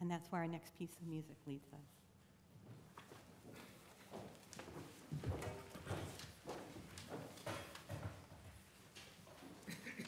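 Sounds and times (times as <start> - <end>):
footsteps on hard floor: 2.7 - 8.5.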